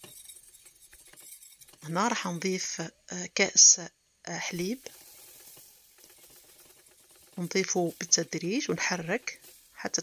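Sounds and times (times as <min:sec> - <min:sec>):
milk sizzling in hot saucepan: 0:00.0 - 0:10.0.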